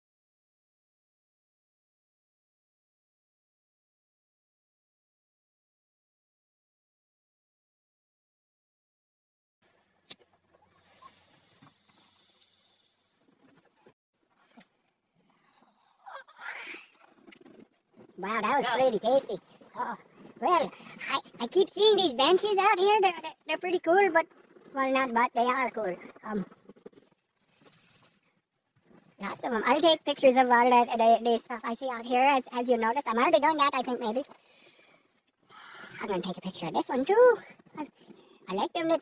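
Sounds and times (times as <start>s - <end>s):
faint hiss of drawing through pipe: 10.6s - 13.4s.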